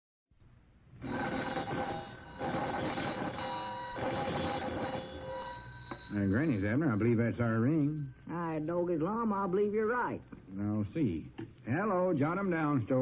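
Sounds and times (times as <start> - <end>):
telephone bell ringing: 1.0 - 8.2.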